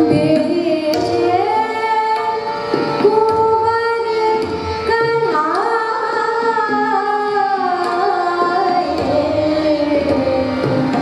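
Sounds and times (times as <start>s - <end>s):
harmonium: 0.0s - 11.0s
tabla: 0.0s - 11.0s
violin: 0.0s - 11.0s
woman singing: 0.0s - 11.0s.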